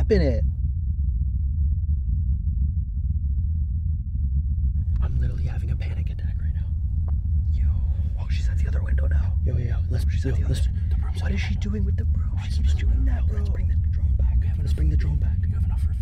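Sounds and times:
low rumble inside car cabin: 0:00.0 - 0:16.0.

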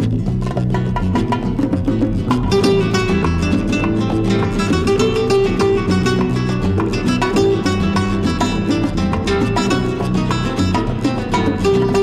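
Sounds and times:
flamenco guitar playing a rumba: 0:00.0 - 0:12.0.

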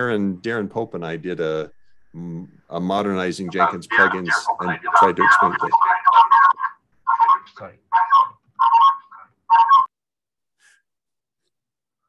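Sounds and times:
person's voice over video call: 0:00.0 - 0:09.2.

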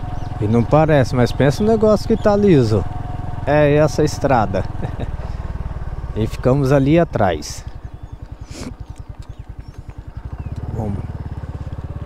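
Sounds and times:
scooter engine puttering: 0:00.0 - 0:12.0.

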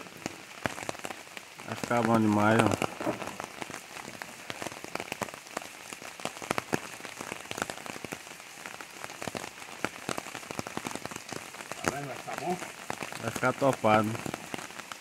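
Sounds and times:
raindrops tapping: 0:00.0 - 0:15.0
steady rain hiss: 0:00.0 - 0:15.0.

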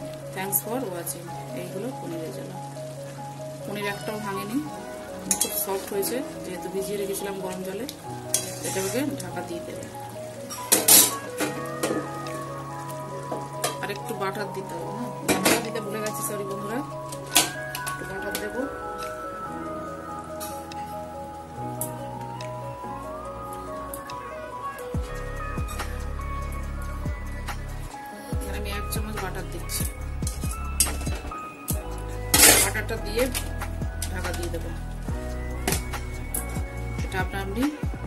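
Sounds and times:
music with thudding beat: 0:28.4 - 0:32.6, 0:35.1 - 0:38.0
metal kitchenware clattering on pot: 0:32.4 - 0:32.8.

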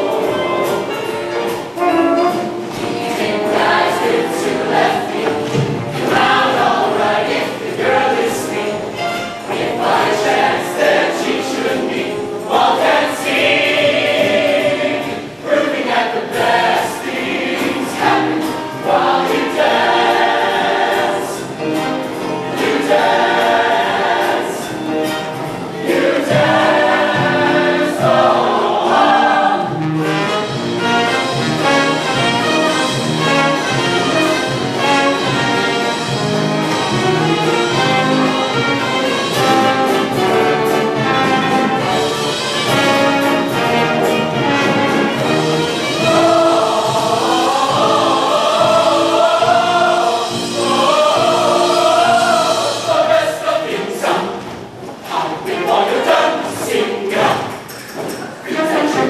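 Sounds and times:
live band playing: 0:00.0 - 0:13.6, 0:20.9 - 0:53.2
choir singing in harmony: 0:00.0 - 0:59.0.

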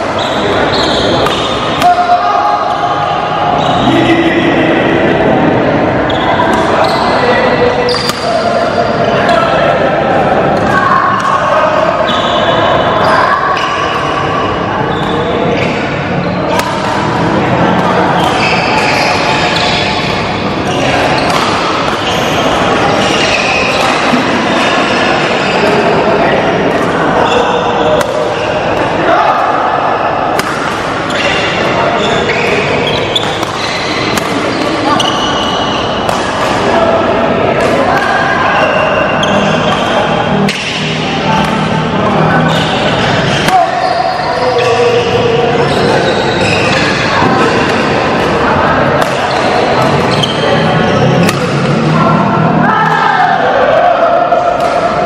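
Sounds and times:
indoor hall din: 0:00.0 - 0:55.0
racket hitting shuttlecock: 0:08.0 - 0:08.3, 0:10.6 - 0:11.4, 0:16.5 - 0:17.2, 0:19.8 - 0:22.4, 0:28.0 - 0:28.9, 0:30.3 - 0:31.7, 0:32.3 - 0:36.7, 0:39.6 - 0:41.9, 0:46.7 - 0:50.4, 0:51.2 - 0:51.8, 0:54.6 - 0:54.9.

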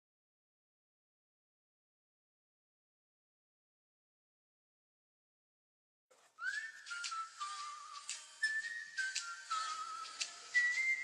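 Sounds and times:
person whistling a slow tune: 0:06.4 - 0:11.0.

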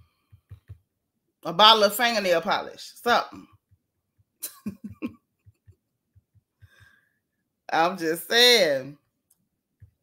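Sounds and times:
woman laughing: 0:04.4 - 0:05.8.

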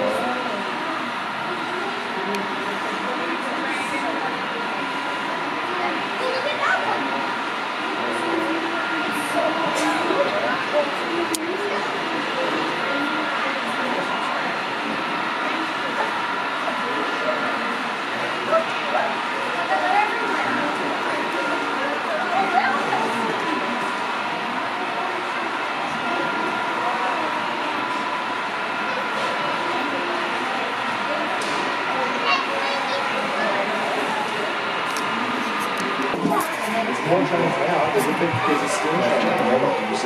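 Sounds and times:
indistinct crowd chatter: 0:00.0 - 0:40.0
steady hum: 0:00.0 - 0:40.0.

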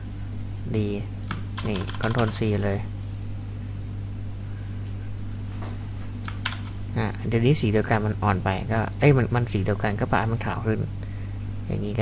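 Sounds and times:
steady low hum: 0:00.0 - 0:12.0
light computer clicks: 0:06.2 - 0:06.8.

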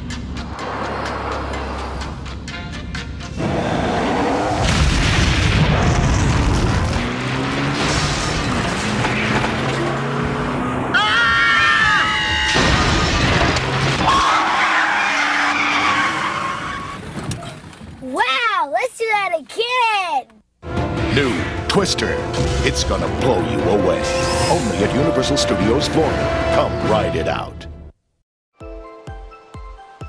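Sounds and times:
music: 0:00.0 - 0:03.4, 0:20.6 - 0:27.9, 0:28.6 - 0:30.0
crashes and impacts: 0:04.4 - 0:10.2, 0:12.5 - 0:14.4
people screaming: 0:10.9 - 0:13.0, 0:14.0 - 0:17.0.

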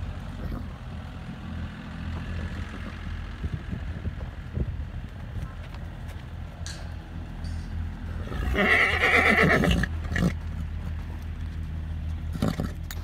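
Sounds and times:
horse whinnying: 0:08.2 - 0:10.4.

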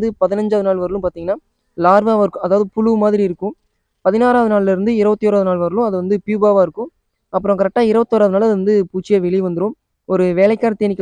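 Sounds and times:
person speaking: 0:00.0 - 0:11.0.

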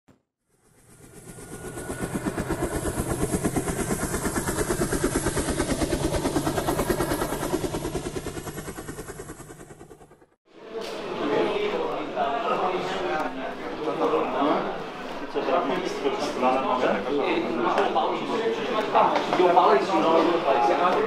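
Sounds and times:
fast mechanical pulsing: 0:00.5 - 0:10.4.

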